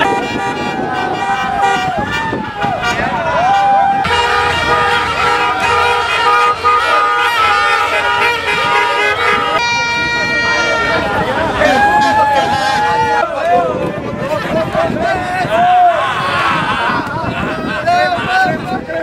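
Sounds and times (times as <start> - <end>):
car horns honking: 0.0 - 13.3
loud horn blaring: 0.0 - 13.3
people shouting and cheering: 0.0 - 19.0.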